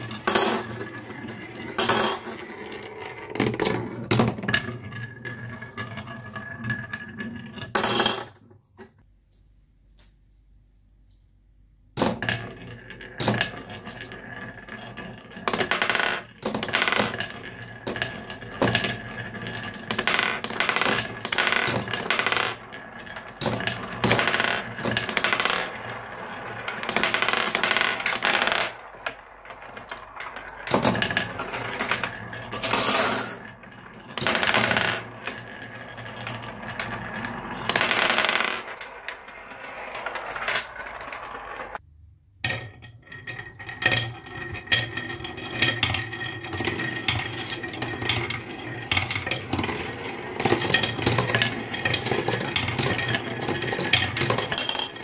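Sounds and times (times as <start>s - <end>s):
marbles rolling on wooden track: 0.0s - 9.0s, 12.0s - 55.0s.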